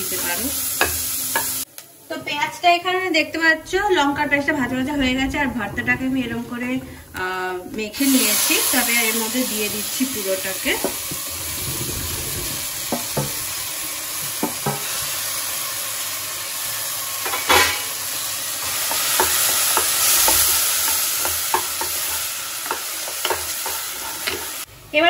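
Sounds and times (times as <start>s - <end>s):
vegetables sizzling in a pot: 0.0s - 5.3s, 6.2s - 25.0s
loud knock on pot: 14.4s - 14.9s.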